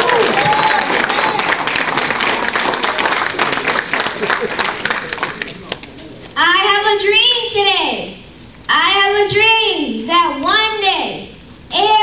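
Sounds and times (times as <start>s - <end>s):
boy speaking through microphone: 6.4s - 12.0s.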